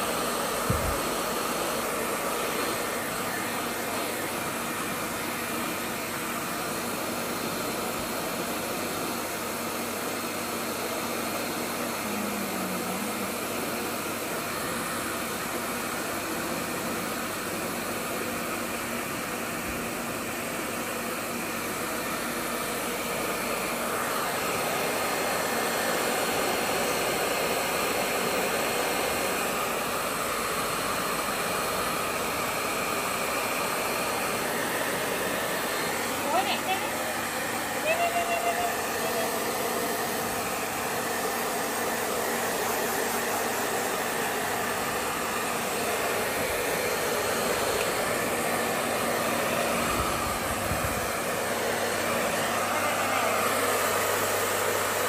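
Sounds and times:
hair dryer blowing: 0.0s - 55.0s.

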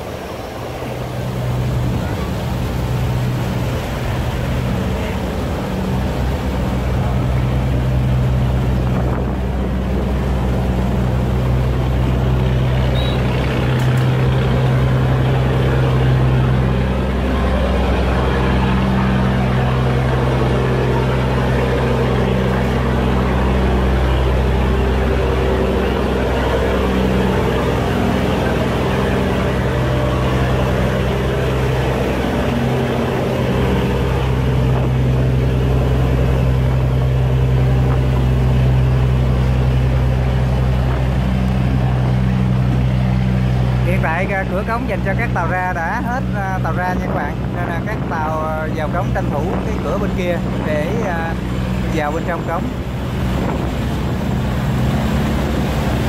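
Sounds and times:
boat engine running: 0.0s - 56.0s
water churning: 0.0s - 56.0s.

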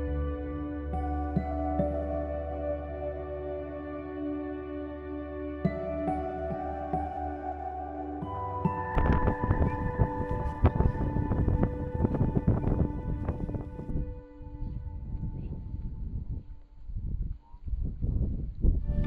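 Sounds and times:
soft background music: 0.0s - 17.2s
wind buffeting microphone: 8.6s - 19.0s.

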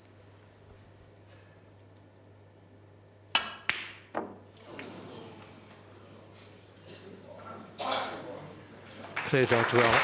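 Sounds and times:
snooker balls colliding click: 3.3s - 4.4s.

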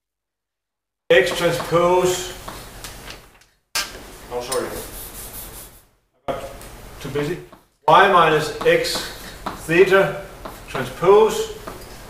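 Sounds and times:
man speaking: 1.1s - 2.4s, 6.3s - 11.7s
chalk scratching on a blackboard: 4.6s - 5.9s, 8.4s - 12.0s.

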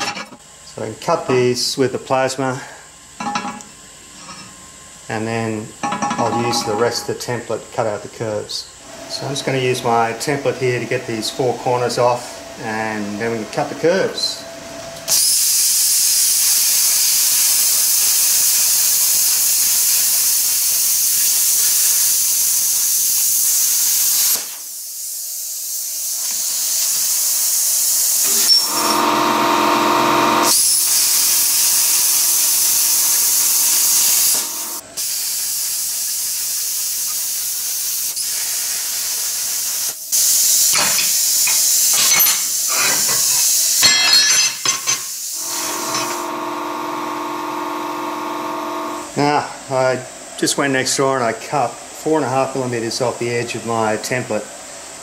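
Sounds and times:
plasma cutter hissing: 15.1s - 29.1s, 30.4s - 46.3s.

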